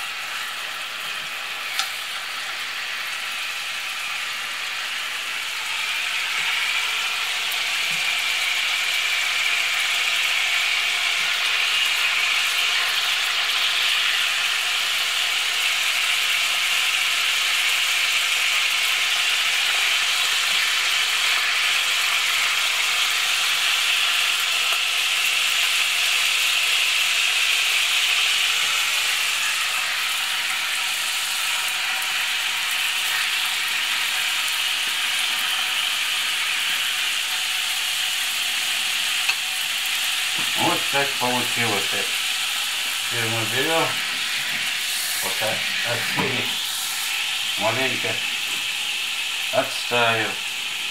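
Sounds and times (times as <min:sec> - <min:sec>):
oil sizzling in a frying pan: 0:00.0 - 0:50.9.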